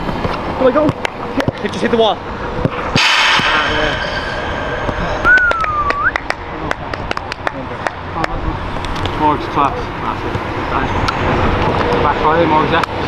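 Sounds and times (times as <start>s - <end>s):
short whistled note: 3.0s - 6.3s.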